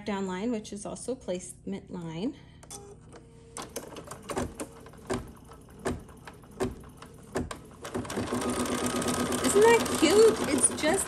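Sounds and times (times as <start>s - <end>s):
embroidery machine clicking: 3.6s - 11.0s.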